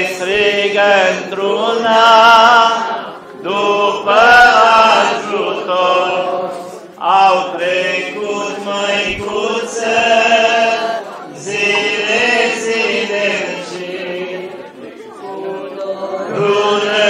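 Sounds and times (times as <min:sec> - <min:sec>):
crowd singing along: 0:00.0 - 0:17.0
man leading church chant: 0:00.0 - 0:17.0.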